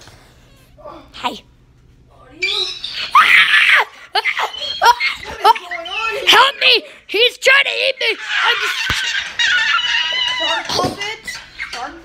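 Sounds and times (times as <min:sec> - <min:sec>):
wordless cries: 0:02.4 - 0:06.8.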